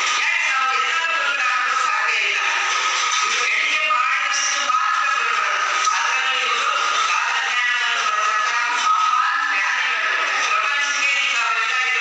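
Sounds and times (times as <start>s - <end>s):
woman singing through speakers: 0.0s - 12.0s.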